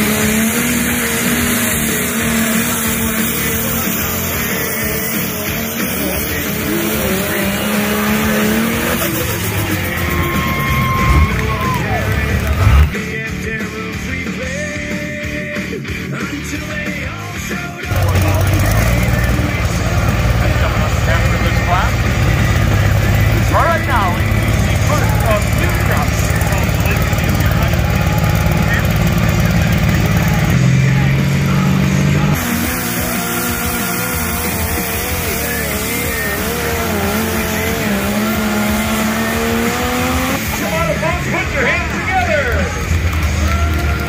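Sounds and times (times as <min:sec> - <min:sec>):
diesel engine running hard: 0:00.0 - 0:44.0.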